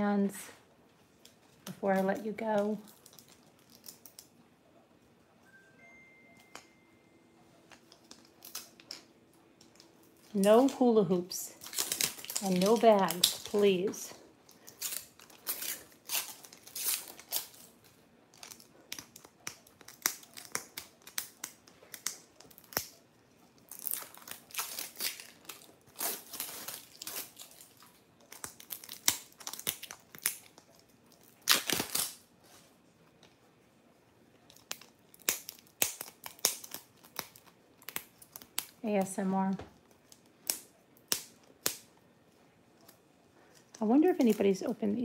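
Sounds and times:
plastic wrapping tearing and crinkling: 0:01.2 - 0:04.4, 0:07.7 - 0:32.6, 0:34.5 - 0:39.1.

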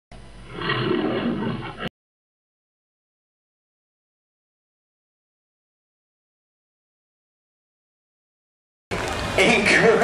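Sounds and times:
big cat roaring: 0:00.4 - 0:01.9.

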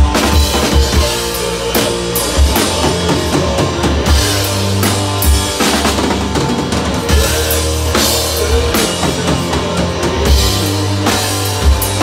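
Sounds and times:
drum kit and cymbals: 0:00.0 - 0:12.0
electric guitars: 0:00.0 - 0:12.0.

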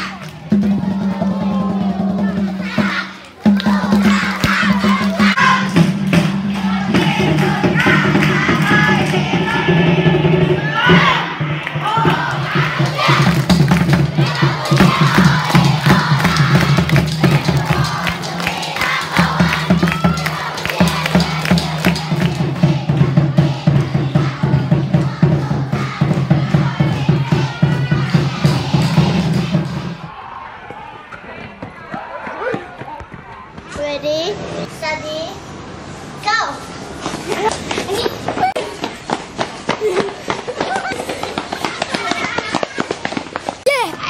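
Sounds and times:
music: 0:00.0 - 0:30.1
children chanting and shouting: 0:00.0 - 0:44.0
hand-clapping: 0:14.7 - 0:22.7.

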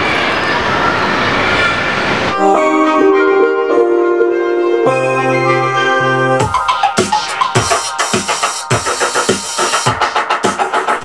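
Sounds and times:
synthesizer chords: 0:02.3 - 0:11.0.

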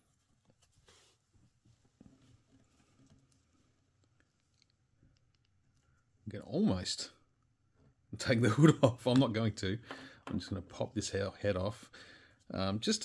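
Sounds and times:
cloth rustling: 0:00.0 - 0:04.9.

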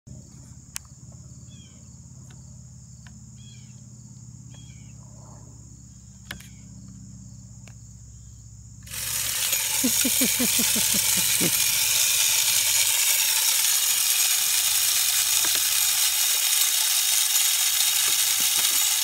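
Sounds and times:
insects droning: 0:00.1 - 0:19.0
feeder spinner rushing and rattling: 0:08.9 - 0:19.0
man laughing: 0:09.6 - 0:12.1.

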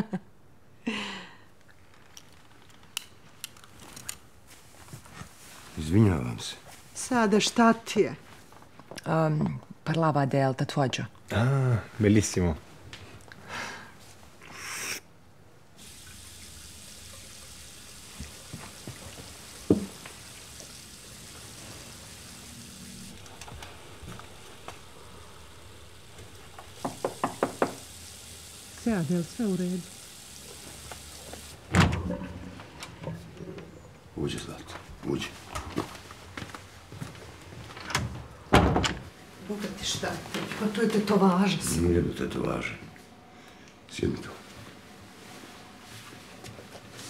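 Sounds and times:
knocks on a door: 0:26.8 - 0:27.8
door banging: 0:38.5 - 0:39.1.

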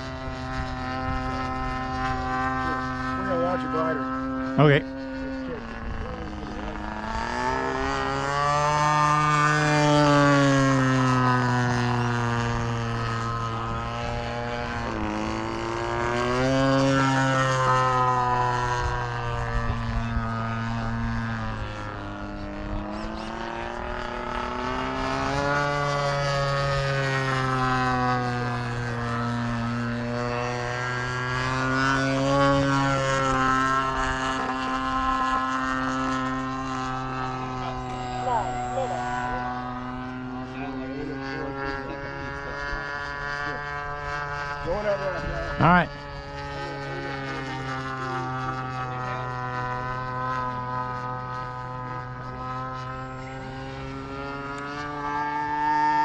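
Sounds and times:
propeller plane engine droning: 0:00.0 - 0:56.0.

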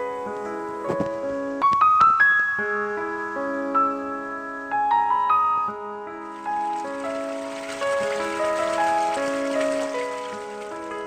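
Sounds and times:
slow piano music: 0:00.0 - 0:11.0
running water splashing: 0:06.1 - 0:11.0.

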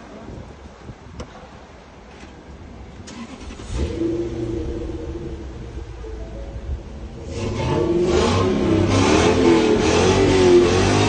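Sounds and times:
car engine revving: 0:03.1 - 0:06.0, 0:07.0 - 0:11.0.

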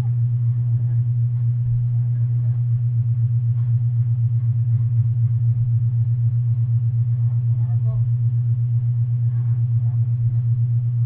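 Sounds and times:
pulsing low hum: 0:00.0 - 0:11.0.

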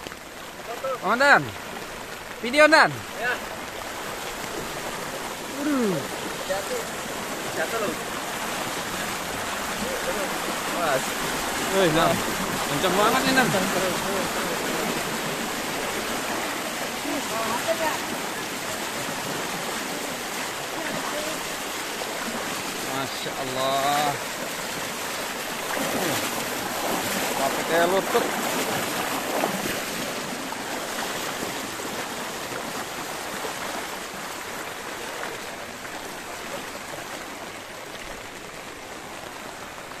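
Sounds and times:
floodwater rushing: 0:00.0 - 0:40.0.

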